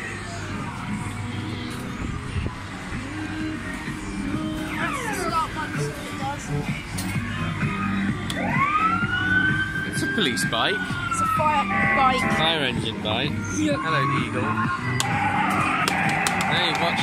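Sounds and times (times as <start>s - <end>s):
kiddie ride music: 0.0s - 17.0s
electronic siren wailing: 4.7s - 5.4s, 7.7s - 12.8s, 13.9s - 17.0s.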